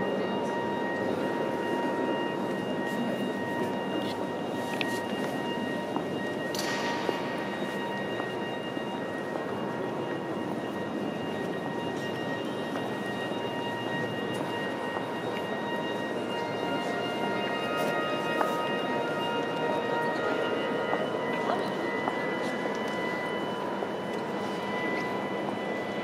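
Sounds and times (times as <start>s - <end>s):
echoing murmur of crowd talking: 0.0s - 26.0s.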